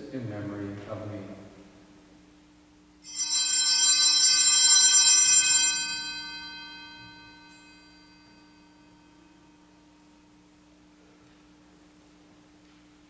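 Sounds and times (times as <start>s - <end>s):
altar bells jingling: 3.0s - 10.2s.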